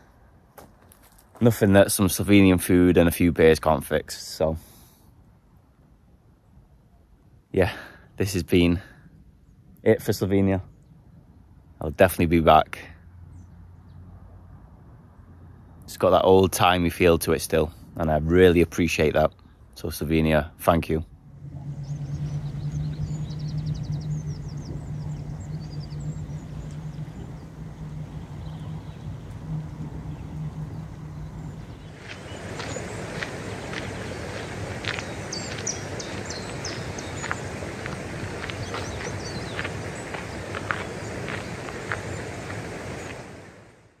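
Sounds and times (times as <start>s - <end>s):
steady low hum: 20.6s - 43.8s
small birds chirping: 21.4s - 43.5s.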